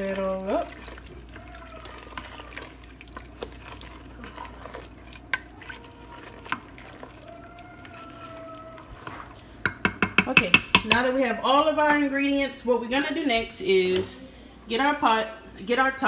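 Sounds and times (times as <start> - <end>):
liquid sloshing: 0.0 - 10.2
spoon stirring beans in water: 0.0 - 14.1.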